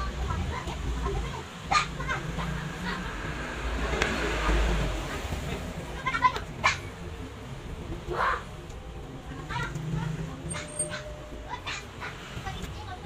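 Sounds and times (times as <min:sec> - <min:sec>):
animal calling: 0:09.6 - 0:12.4.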